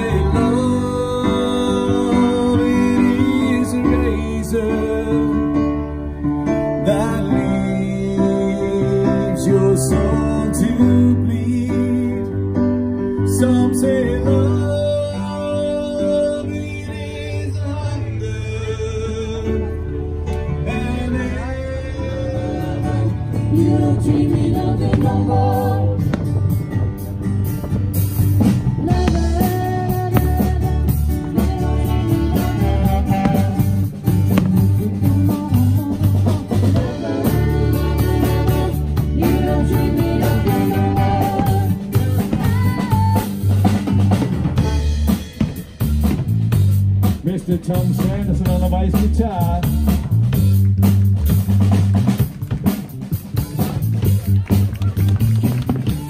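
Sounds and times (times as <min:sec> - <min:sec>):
slow ballad with guitar and singing: 0:00.0 - 0:44.8
drum beat: 0:23.6 - 0:56.0.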